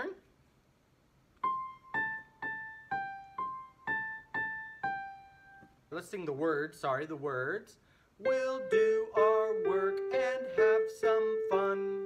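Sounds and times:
electronic keyboard piano melody: 1.4s - 5.8s, 8.2s - 12.0s.

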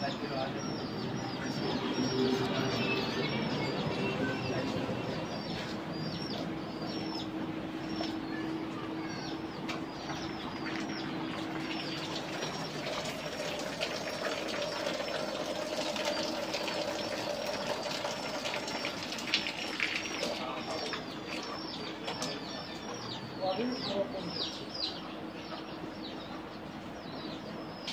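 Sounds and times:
small birds chirping: 0.0s - 27.9s
steady background hum: 0.0s - 27.9s.

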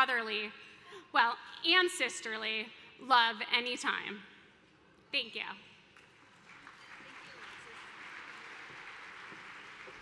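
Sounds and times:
crowd applauding: 6.2s - 10.0s.

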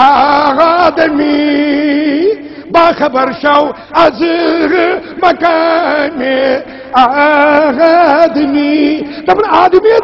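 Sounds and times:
man chanting with vibrato: 0.0s - 10.0s.

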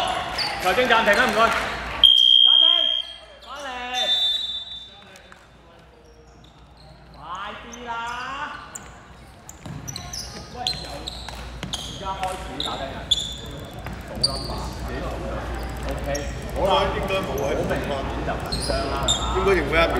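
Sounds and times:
sneaker squeaks: 0.0s - 5.2s, 5.8s - 17.8s, 18.4s - 19.7s
ball bouncing on court floor: 8.8s - 12.4s, 13.7s - 14.4s.

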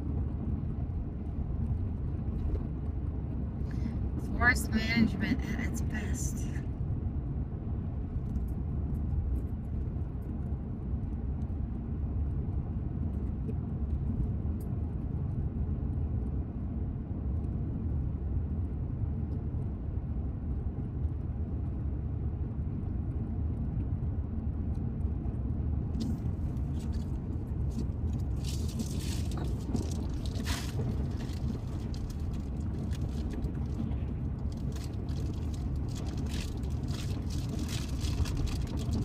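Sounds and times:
car road and engine noise: 0.0s - 39.0s.

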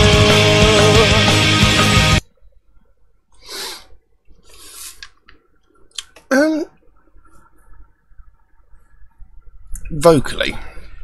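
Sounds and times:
heavy metal music with strings: 0.0s - 2.2s.

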